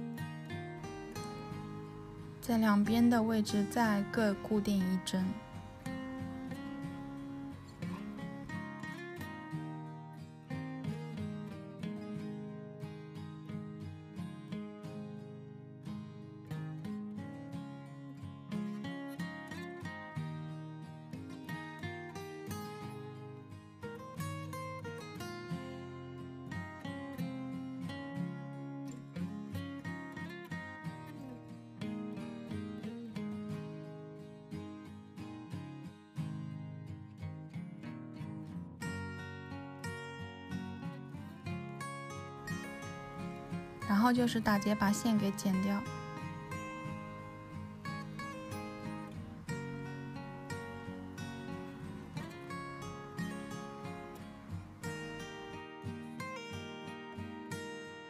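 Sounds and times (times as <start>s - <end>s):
plucked acoustic guitar: 0.0s - 58.0s.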